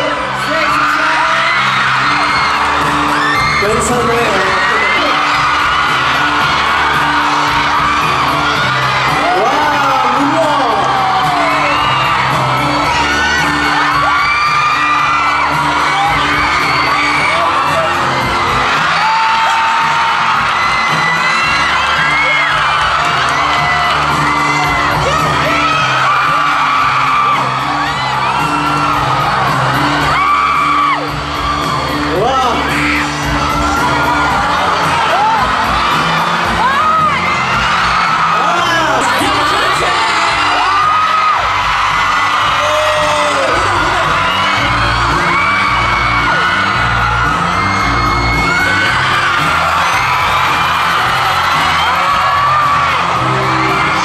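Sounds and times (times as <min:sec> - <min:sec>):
crowd screaming and cheering: 0:00.0 - 0:54.0
pop dance music over sound system: 0:00.0 - 0:54.0.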